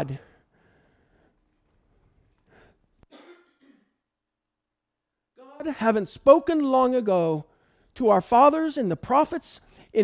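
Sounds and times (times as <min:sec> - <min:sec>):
man clearing his throat: 0:03.1 - 0:04.0.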